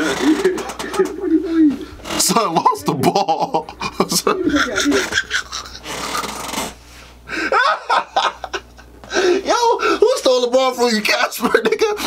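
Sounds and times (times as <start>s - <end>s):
man laughing hard: 2.7s - 6.4s, 7.3s - 9.5s.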